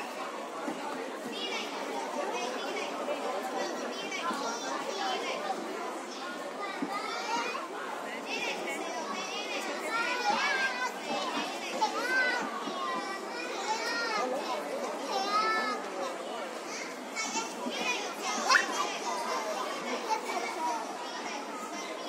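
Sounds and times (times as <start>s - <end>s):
young children chattering: 0.0s - 22.0s.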